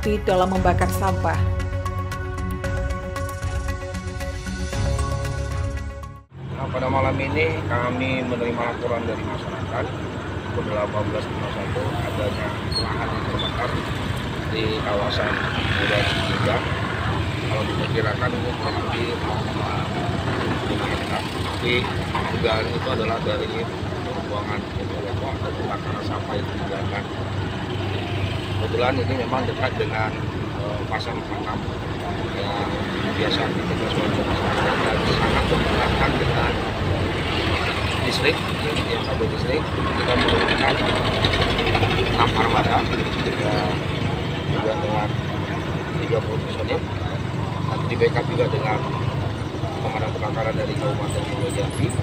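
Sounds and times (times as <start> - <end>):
man speaking: 6.6 - 10.0, 10.6 - 13.8, 14.5 - 16.7, 17.5 - 27.1, 28.6 - 31.6, 32.3 - 36.6, 38.0 - 41.0, 42.0 - 43.8, 44.5 - 45.2, 45.8 - 47.0, 47.7 - 48.9, 49.7 - 52.0
engine idling: 7.3 - 52.0
man's voice: 32.4 - 36.6.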